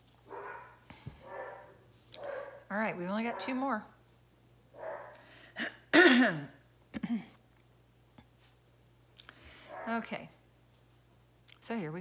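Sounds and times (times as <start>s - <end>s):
breath: 5.2s - 5.6s, 9.3s - 9.8s
person clearing throat: 5.6s - 7.4s
person coughing: 5.6s - 7.4s.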